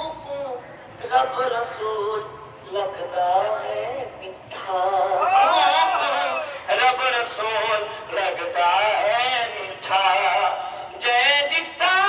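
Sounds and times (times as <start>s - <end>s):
man singing: 0.0s - 12.0s.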